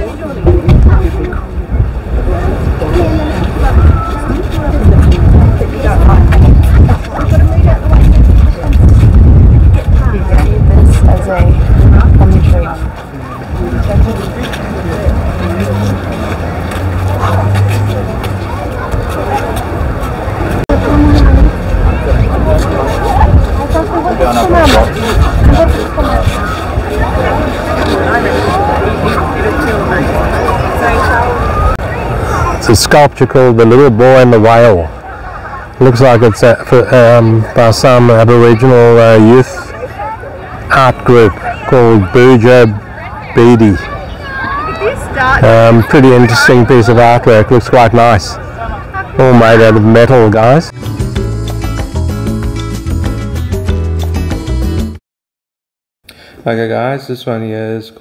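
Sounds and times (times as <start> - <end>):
wind buffeting microphone: 0.0 - 32.7
people talking: 0.0 - 50.7, 56.4 - 58.0.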